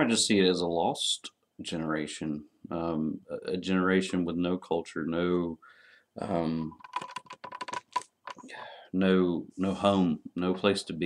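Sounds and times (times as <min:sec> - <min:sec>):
computer keyboard clicking: 0:06.8 - 0:08.4.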